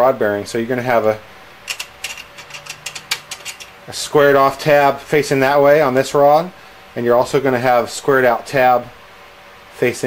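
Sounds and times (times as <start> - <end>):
small metal parts clinking: 1.6 - 3.8.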